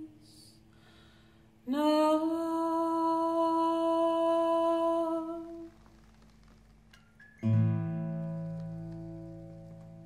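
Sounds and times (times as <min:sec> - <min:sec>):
woman singing a long note: 0:01.7 - 0:05.7.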